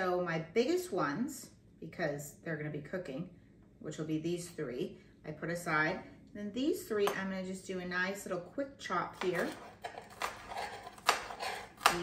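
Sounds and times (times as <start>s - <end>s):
knife chopping on wooden board: 9.2s - 12.0s.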